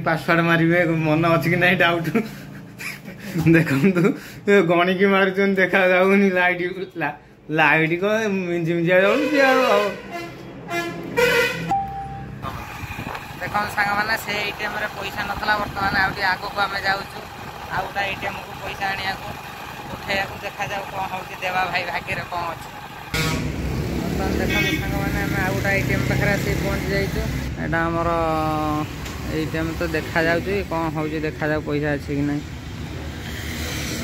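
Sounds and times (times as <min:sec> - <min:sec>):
men talking: 0:00.0 - 0:02.5, 0:03.1 - 0:10.0, 0:13.3 - 0:22.7, 0:24.0 - 0:32.5
passing traffic: 0:00.0 - 0:03.5, 0:09.1 - 0:34.0
person speaking: 0:05.2 - 0:10.1, 0:11.7 - 0:22.7
electronic keypad beep: 0:11.7 - 0:12.3
steady held tone: 0:11.7 - 0:15.2
engine running: 0:12.2 - 0:27.6.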